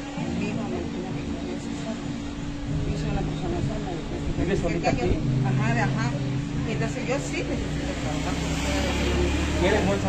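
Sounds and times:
vehicle engine rumble passing: 0.8 - 10.0.

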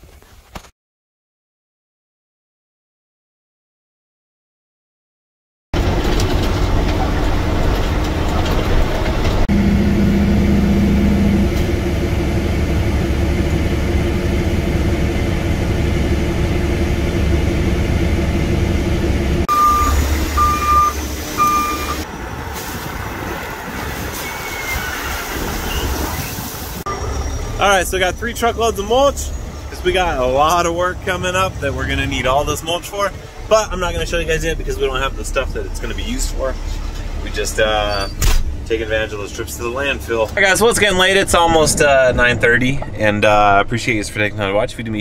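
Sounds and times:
machinery noise: 5.8 - 44.9
diesel truck engine running: 5.8 - 45.0
backup alarm beeping: 19.5 - 22.1.

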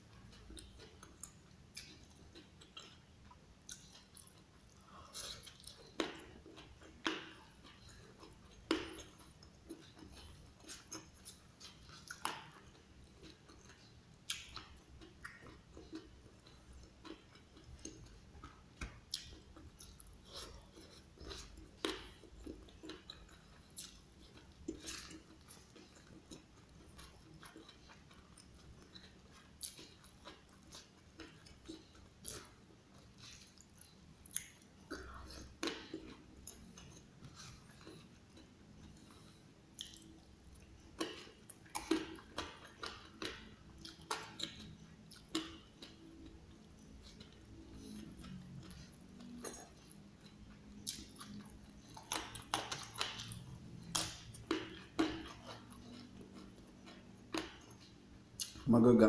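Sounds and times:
chewing with sharp crunches: 0.0 - 58.7.

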